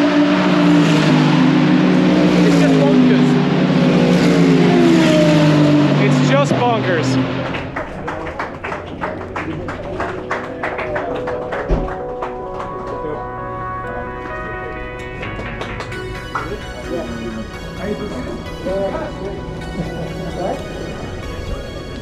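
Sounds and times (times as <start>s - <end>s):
race car engines passing: 0.0s - 22.0s.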